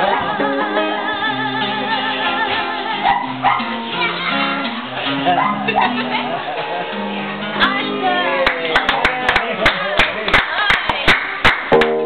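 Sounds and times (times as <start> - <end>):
people clapping: 7.6 - 12.0
strummed acoustic guitar chord: 11.7 - 12.0.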